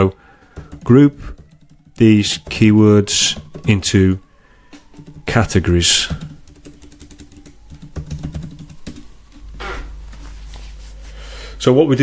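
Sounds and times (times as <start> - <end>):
typing on computer keyboard: 0.4 - 4.0, 4.9 - 9.4.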